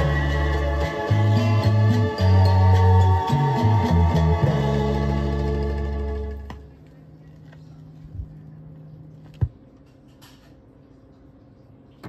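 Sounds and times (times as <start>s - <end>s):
record surface noise: 5.2s - 12.0s.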